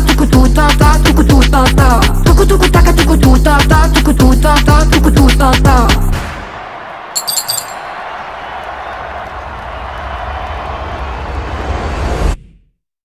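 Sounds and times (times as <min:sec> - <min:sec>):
bright chime-like clinks: 0:07.2 - 0:07.9.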